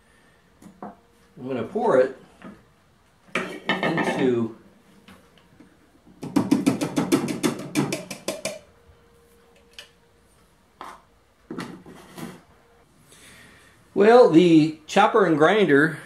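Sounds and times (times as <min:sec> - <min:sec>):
faint steady hum: 0:00.0 - 0:16.0.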